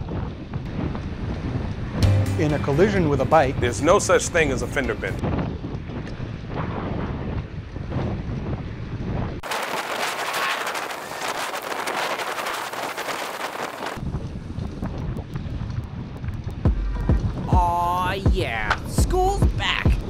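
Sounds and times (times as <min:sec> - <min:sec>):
wind buffeting microphone: 0:00.0 - 0:02.0, 0:02.7 - 0:20.0.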